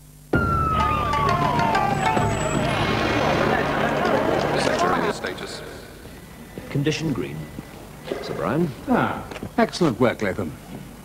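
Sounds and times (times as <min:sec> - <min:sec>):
siren winding down: 0:00.3 - 0:05.2
crowd noise: 0:00.4 - 0:07.1
vehicle noise: 0:00.6 - 0:06.2.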